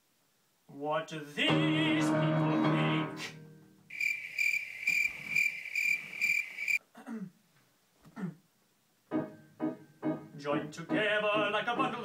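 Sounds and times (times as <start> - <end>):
cricket chirping: 3.9 - 6.8.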